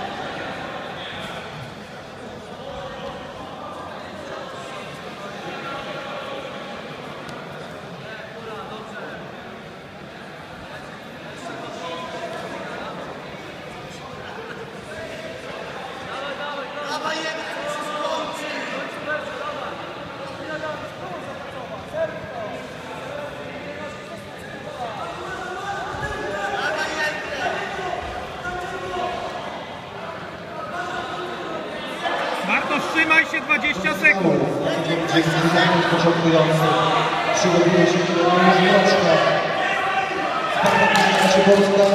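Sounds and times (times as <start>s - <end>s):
spectators calling and talking: 0.0s - 41.9s.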